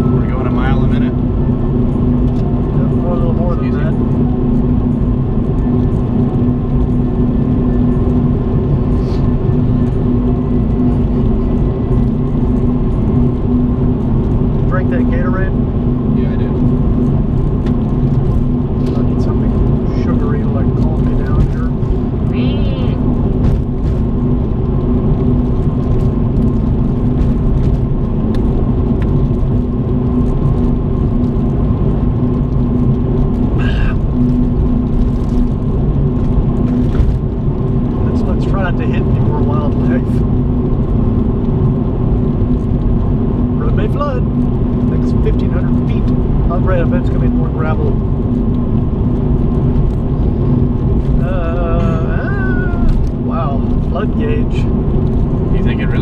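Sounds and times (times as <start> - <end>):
car engine and road drone: 0.0 - 56.0.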